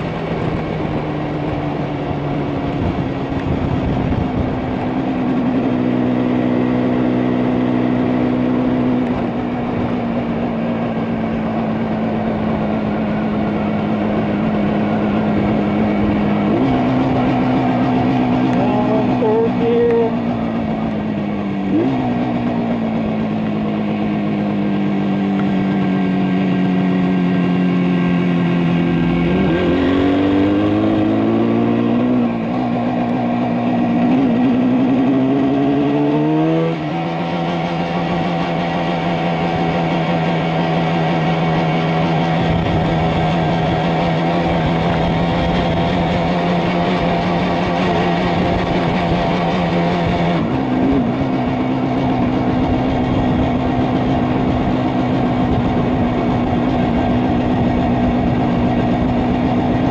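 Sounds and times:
two-stroke motorcycle engine: 0.0 - 59.9.

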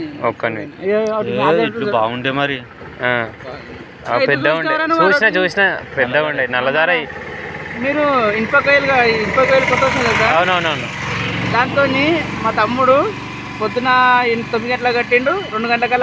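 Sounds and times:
people talking: 0.0 - 7.1, 7.8 - 16.0
low engine hum: 1.0 - 16.0.

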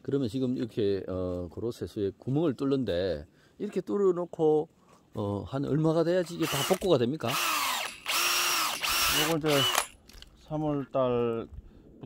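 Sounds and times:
cordless drill whining: 6.2 - 10.0.

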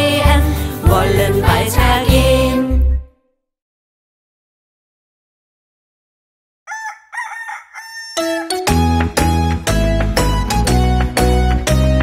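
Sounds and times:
rooster crowing: 6.7 - 8.7.

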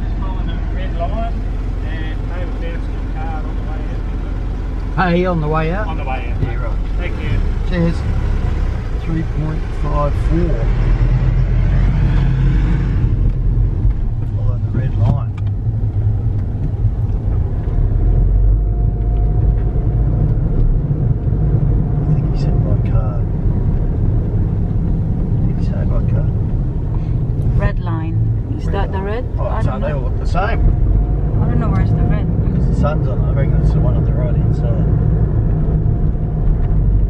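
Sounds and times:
car engine and tyre rumble: 0.0 - 37.0.

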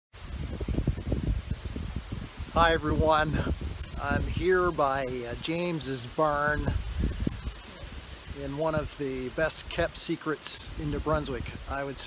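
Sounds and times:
wind buffeting microphone: 0.2 - 10.0, 10.7 - 12.0.

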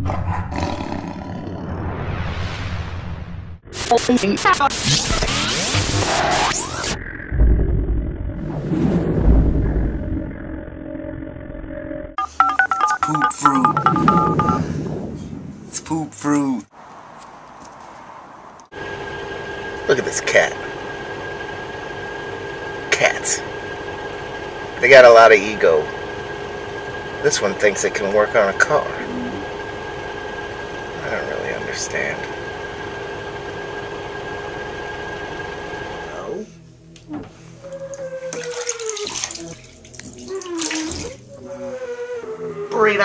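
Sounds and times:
steady hum: 18.8 - 37.7
water pouring: 38.3 - 41.1
water splashing: 38.3 - 41.3.

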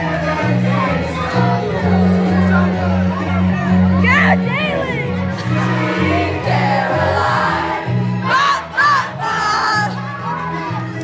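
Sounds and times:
voices singing: 0.0 - 11.0.

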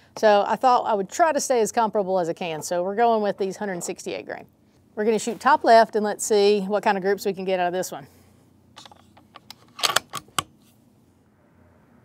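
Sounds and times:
rifle bolt metallic clicks: 8.8 - 10.5.

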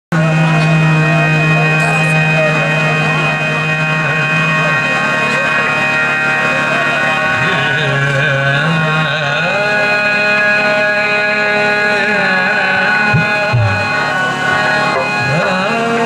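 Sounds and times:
instrumental drone: 0.1 - 16.0
man singing ornamented melody: 0.1 - 16.0.

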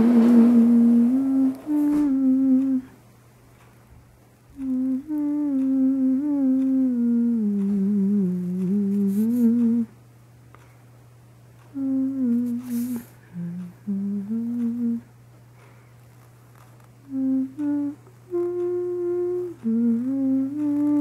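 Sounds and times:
person humming a tune: 0.0 - 3.1, 4.5 - 10.0, 11.7 - 15.2, 17.0 - 21.0
steady low hum: 0.0 - 21.0.

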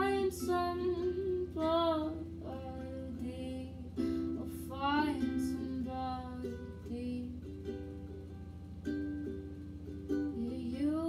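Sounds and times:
woman singing: 0.0 - 7.8, 10.2 - 11.0
ukulele strumming: 0.0 - 11.0.

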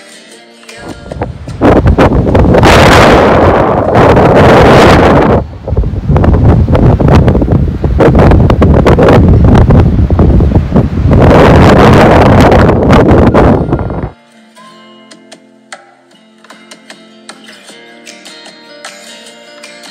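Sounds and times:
wind buffeting microphone: 0.8 - 14.2.

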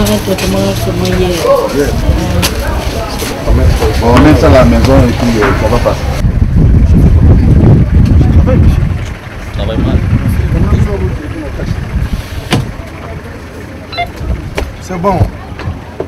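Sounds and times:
people talking: 0.0 - 6.2, 7.8 - 16.0
loud low rumble: 3.5 - 15.8.

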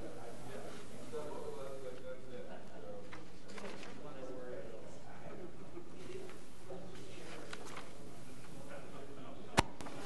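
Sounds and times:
muffled voices talking: 0.0 - 10.0.

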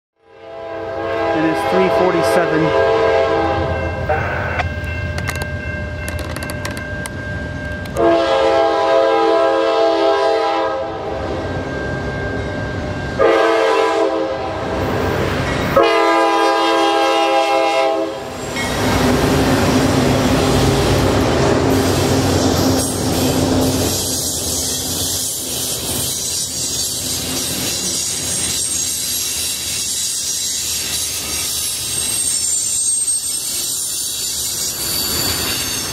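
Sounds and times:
locomotive air horn blasts: 0.2 - 4.6, 8.0 - 11.2, 13.2 - 14.7, 15.8 - 18.3
diesel locomotive engine: 0.4 - 35.9
freight car wheel clatter: 5.1 - 7.1.

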